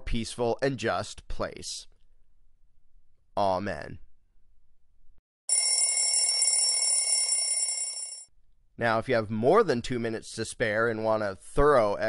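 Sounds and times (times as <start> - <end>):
alarm clock bell ringing: 5.5 - 8.3.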